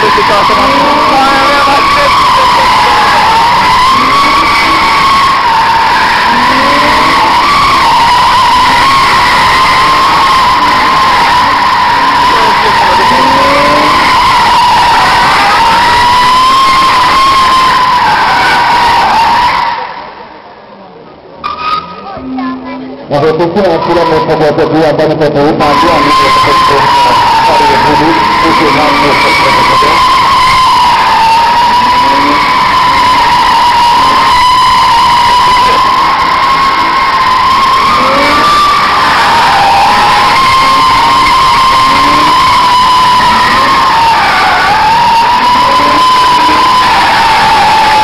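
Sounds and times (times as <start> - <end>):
engines revving: 0.0 - 19.6, 25.3 - 48.0
car tyres squealing: 0.0 - 20.3, 21.4 - 22.3, 23.2 - 48.0.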